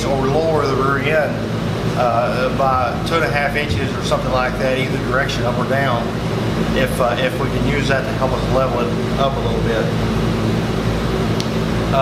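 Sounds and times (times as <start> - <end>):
low machine hum: 0.0 - 12.0.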